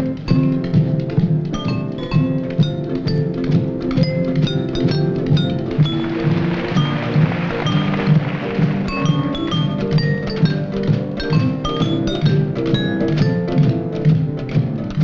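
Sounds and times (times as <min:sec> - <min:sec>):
spoons striking glasses and jars: 0:00.0 - 0:15.0.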